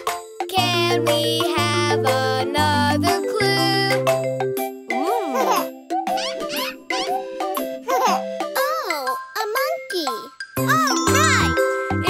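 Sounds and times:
bright children's music: 0.0s - 12.0s
cartoon toddler monkey calls: 4.9s - 8.2s.

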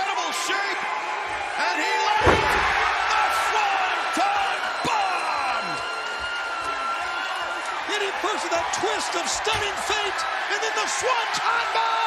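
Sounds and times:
arena crowd cheering: 0.0s - 12.0s
body slamming onto wrestling ring: 2.2s - 3.0s.

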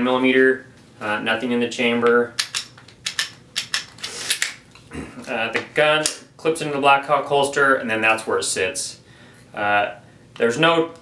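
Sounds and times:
pistol clicking into holster: 2.4s - 4.6s.

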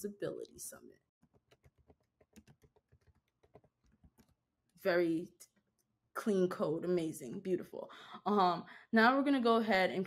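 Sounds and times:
keyboard key clicks: 1.4s - 4.3s.

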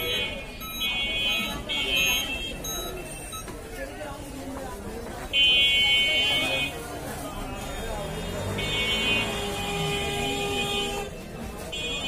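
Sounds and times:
street market noise: 0.0s - 12.0s.

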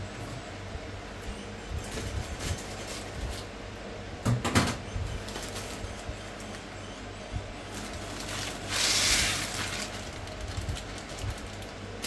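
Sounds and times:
plastic bag rustling and crinkling: 1.8s - 3.5s, 5.1s - 6.6s, 7.6s - 12.0s.

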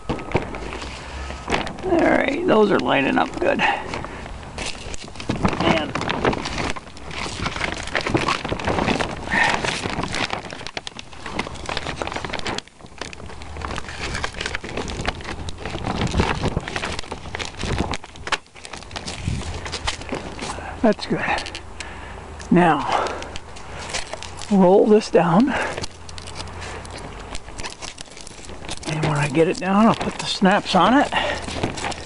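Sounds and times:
plastic sheeting rustling: 0.0s - 32.0s.

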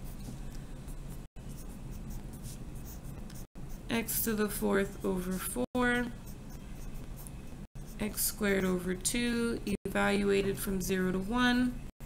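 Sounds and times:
pen scratching on paper: 0.0s - 8.9s.

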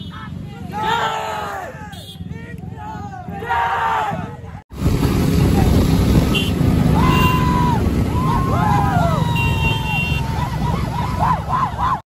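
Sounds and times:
riders whooping and shouting: 0.0s - 4.6s, 6.8s - 12.0s
motorcycle engines rumbling: 0.0s - 12.0s.

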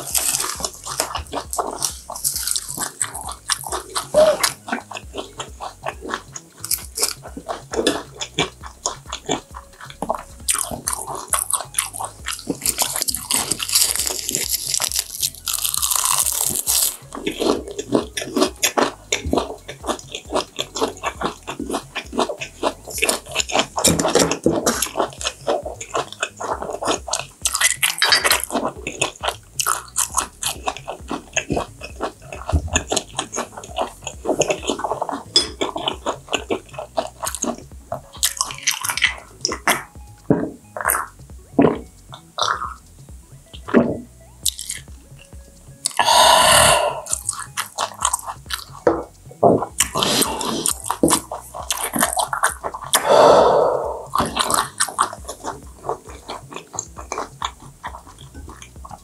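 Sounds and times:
wet chewing crunches: 0.0s - 59.0s.

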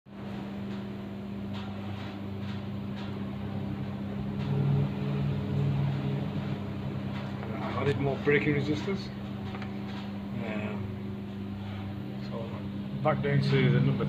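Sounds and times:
low electrical hum: 0.1s - 14.0s.

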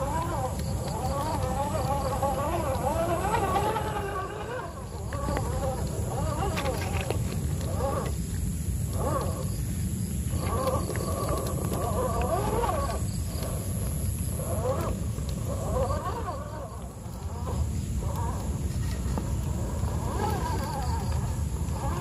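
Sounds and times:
electric motor whining: 0.0s - 8.2s, 10.3s - 13.7s, 14.3s - 22.0s
steady low rumble: 0.0s - 22.0s.

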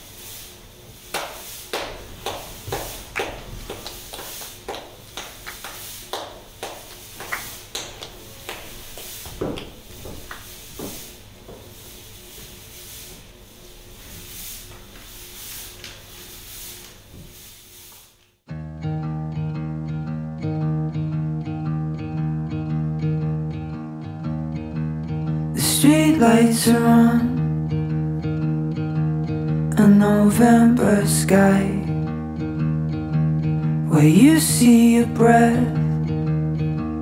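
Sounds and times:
footsteps on wooden stage floor: 1.1s - 11.7s.

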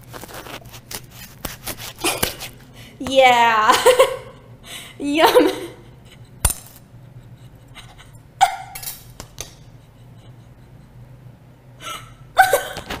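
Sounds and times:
metal cutlery clicking on counter: 8.7s - 9.6s
woman's breathy vocal sounds: 11.8s - 12.3s.

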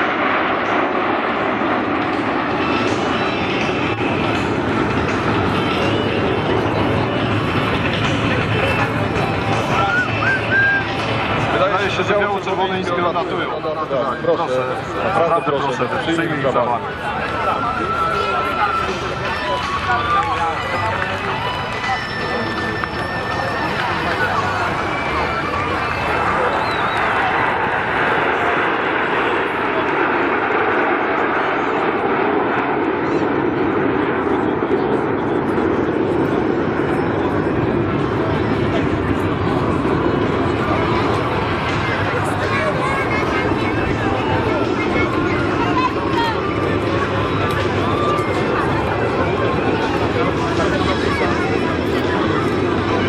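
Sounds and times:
crowd voices: 0.0s - 53.0s
jet aircraft flying: 0.0s - 53.0s.

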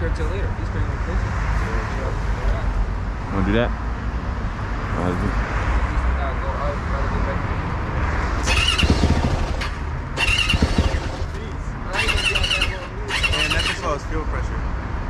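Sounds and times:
motorcycle engine bursts: 8.4s - 14.2s.

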